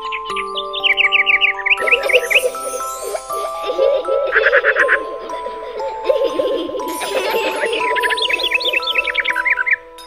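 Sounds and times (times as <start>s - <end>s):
high bird-like chirps: 0.0s - 9.9s
held music chord: 0.0s - 10.0s.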